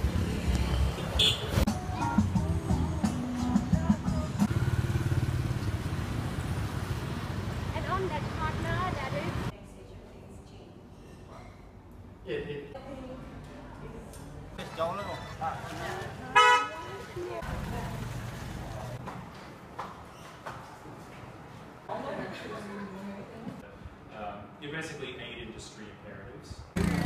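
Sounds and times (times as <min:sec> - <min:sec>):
vehicle horn toot: 0:01.0 - 0:01.6, 0:16.3 - 0:17.0
motorcycle engine running: 0:04.4 - 0:07.2, 0:26.8 - 0:27.0
voices: 0:07.7 - 0:10.7, 0:12.8 - 0:19.0.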